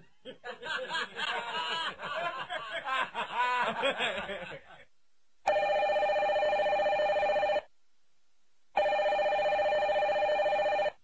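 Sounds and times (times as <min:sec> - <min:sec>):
desk telephone ringing: 0:05.5 - 0:07.6, 0:08.8 - 0:11.0.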